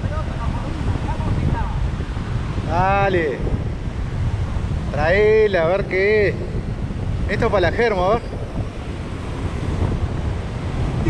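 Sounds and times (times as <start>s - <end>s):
ocean surf breaking on beach: 0.0s - 11.0s
wind buffeting microphone: 0.0s - 11.0s.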